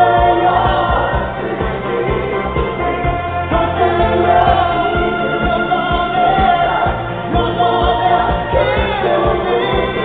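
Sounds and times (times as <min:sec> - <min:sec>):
electronic beat: 0:00.0 - 0:10.0
person singing: 0:00.0 - 0:10.0.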